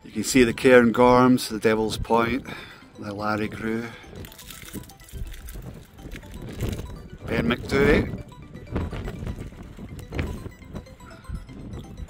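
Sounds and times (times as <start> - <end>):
wind buffeting microphone: 3.5 - 12.0.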